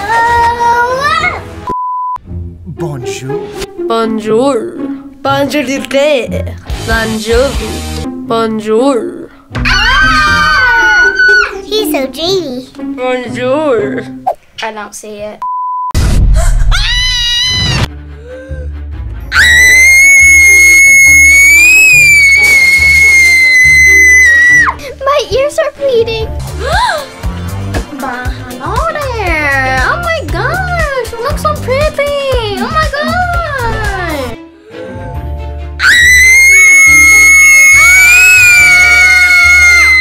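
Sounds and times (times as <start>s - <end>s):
background music: 0.0s - 15.2s, 17.5s - 40.0s
girl screaming: 9.6s - 11.6s, 16.6s - 17.9s, 19.3s - 24.8s, 35.8s - 40.0s.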